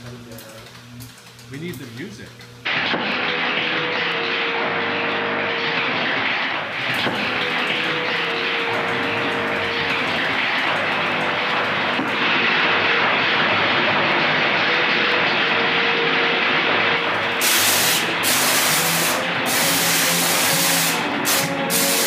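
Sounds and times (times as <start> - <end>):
electric sparks buzzing and crackling: 0.0 - 22.0.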